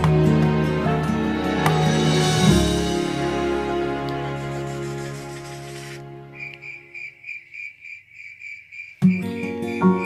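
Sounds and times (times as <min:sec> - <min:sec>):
background music: 0:00.0 - 0:07.3, 0:09.0 - 0:10.0
insect chirping: 0:06.3 - 0:10.0.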